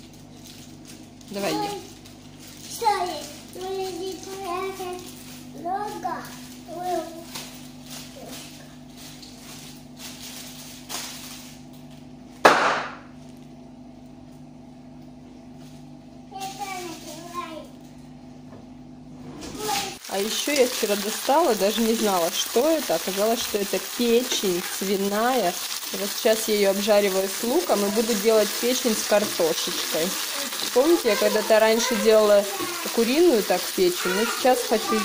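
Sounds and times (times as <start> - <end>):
plastic bag popping: 7.3 - 11.6, 12.4 - 13.1
child calling: 30.2 - 35.0.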